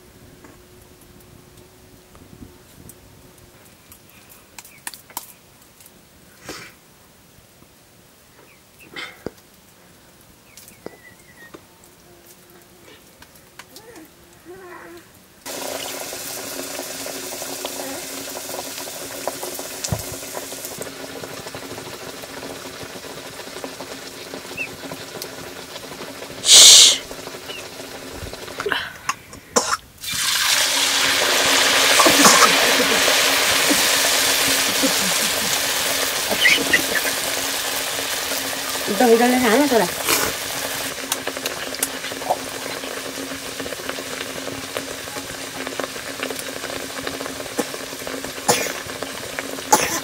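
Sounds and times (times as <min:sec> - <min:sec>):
flatbread sizzling in hot oil: 0:15.4 - 0:28.6, 0:29.6 - 0:50.0
loud hiss: 0:26.4 - 0:27.6, 0:30.0 - 0:41.0.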